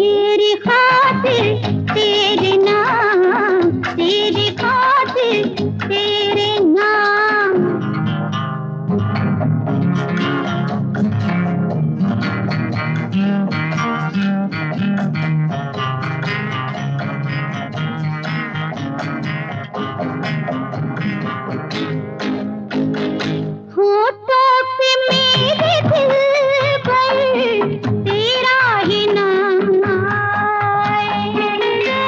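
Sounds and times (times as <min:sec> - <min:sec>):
fast plucked guitar notes: 0:00.0 - 0:32.0
steady bass line: 0:07.8 - 0:23.7.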